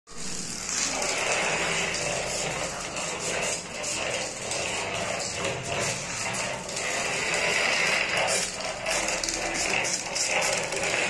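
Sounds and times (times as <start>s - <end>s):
small gear motors running: 0.1s - 11.0s.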